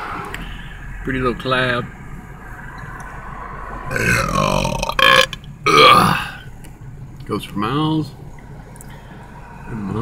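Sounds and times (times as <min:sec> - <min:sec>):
road and engine hum: 0:00.0 - 0:10.0
man belching: 0:03.9 - 0:06.4.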